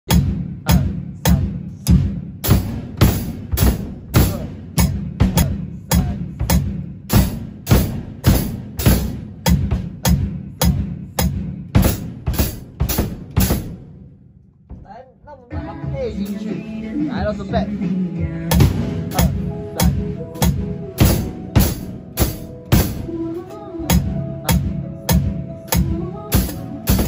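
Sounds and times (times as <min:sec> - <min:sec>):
drum kits playing steady beat: 0:00.0 - 0:27.0.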